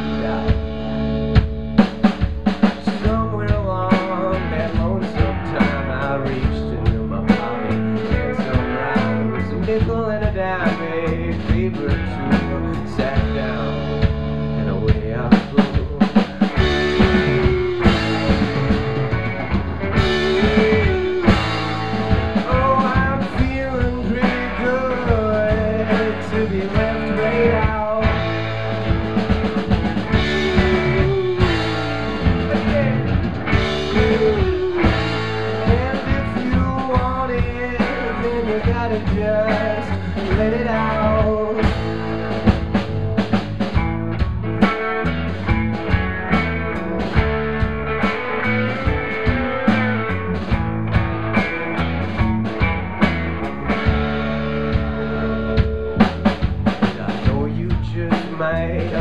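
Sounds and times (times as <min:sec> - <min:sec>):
bent gliding guitar lead melody: 0:00.0 - 0:58.8
drum kit playing: 0:00.0 - 0:59.0
electric guitars: 0:00.0 - 0:59.0.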